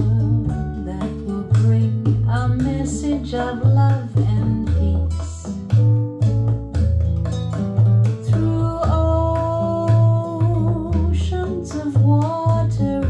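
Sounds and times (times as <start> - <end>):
deep plucked bass notes: 0.0 - 13.0
plucked acoustic guitar: 0.0 - 13.0.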